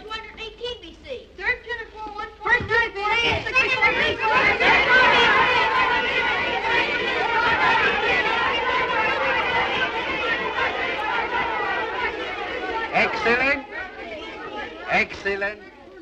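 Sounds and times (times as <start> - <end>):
children calling out: 2.3 - 16.0.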